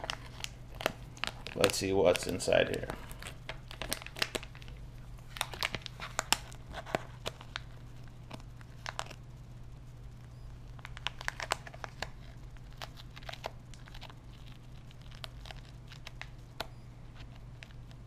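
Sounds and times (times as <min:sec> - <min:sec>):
foil packet crinkling: 0:00.0 - 0:09.2, 0:10.6 - 0:18.0
steady low hum: 0:00.0 - 0:18.0.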